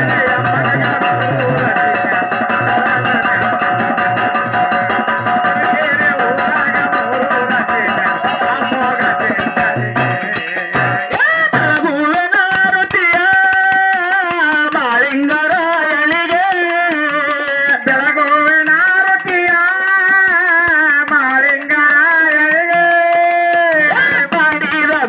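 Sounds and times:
drum strokes: 0.0s - 25.0s.

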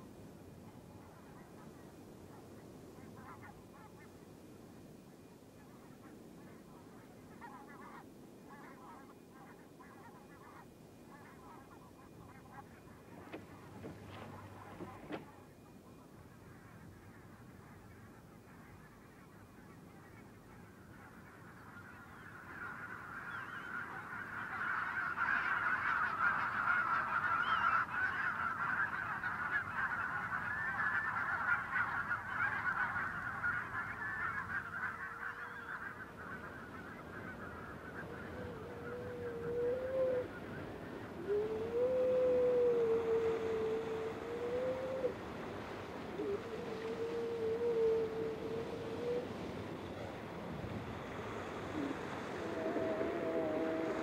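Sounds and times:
geese honking: 1.0s - 4.2s, 5.6s - 54.0s
long wavering calls: 4.9s - 54.0s.

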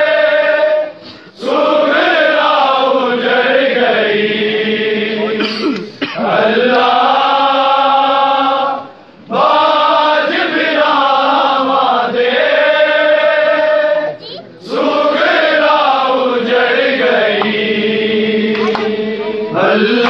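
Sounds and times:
men chanting a lament: 0.0s - 20.0s.

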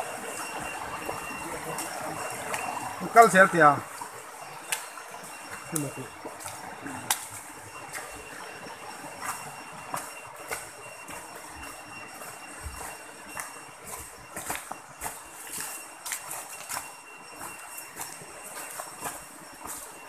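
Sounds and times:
rocky stream rushing: 0.0s - 16.9s
footsteps on stones: 0.1s - 20.0s.

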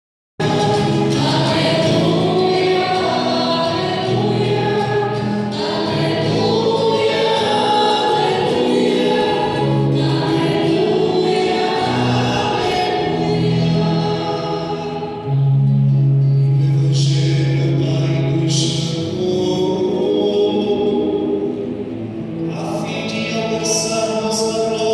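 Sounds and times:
choir singing a hymn: 0.4s - 24.9s.

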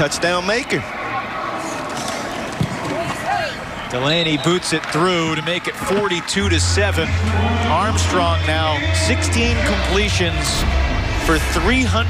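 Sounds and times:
distant shouting voices: 0.0s - 11.6s
stadium background noise: 0.0s - 12.0s.

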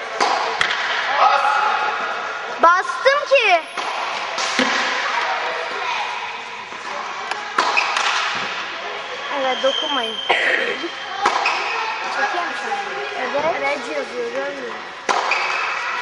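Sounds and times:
racket hitting tennis ball: 6.7s - 8.5s, 15.0s - 15.8s.

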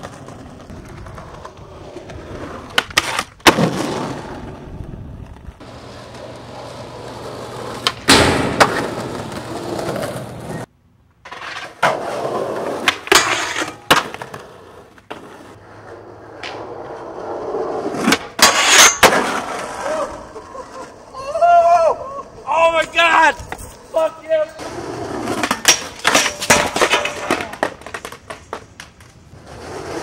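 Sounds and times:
skateboard pops and landings: 0.0s - 10.7s, 11.3s - 15.5s, 16.3s - 20.0s, 25.0s - 30.0s
skateboard wheels rolling on pavement: 0.0s - 30.0s.

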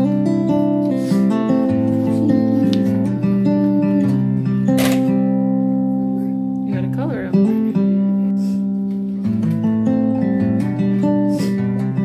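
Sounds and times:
acoustic guitar melody: 0.0s - 12.0s.

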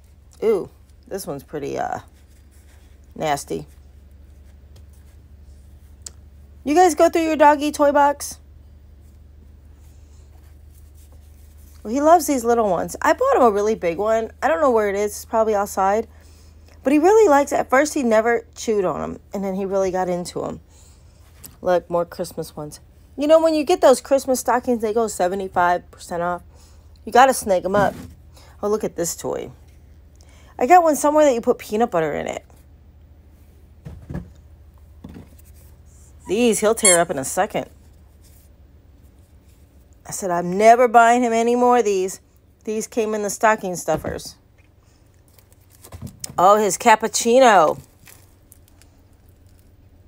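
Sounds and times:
steady low hum: 0.0s - 50.0s
woman speaking: 0.4s - 2.1s, 3.2s - 3.8s, 6.6s - 8.4s, 11.8s - 16.1s, 16.8s - 20.6s, 21.6s - 26.4s, 27.0s - 28.0s, 28.6s - 29.6s, 30.6s - 32.5s, 36.2s - 37.7s, 40.1s - 44.4s, 46.3s - 47.8s.

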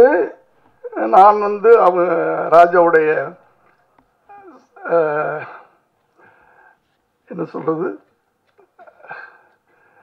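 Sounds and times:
man speaking into a microphone: 7.2s - 8.1s.

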